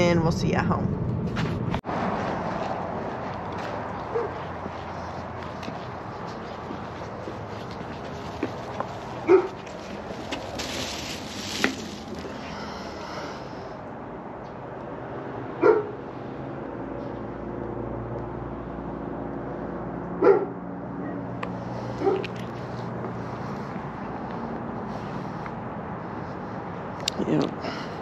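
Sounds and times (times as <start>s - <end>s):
dog barking: 4.1s - 4.4s, 9.2s - 9.6s, 15.6s - 16.0s, 20.2s - 21.2s, 22.0s - 22.4s.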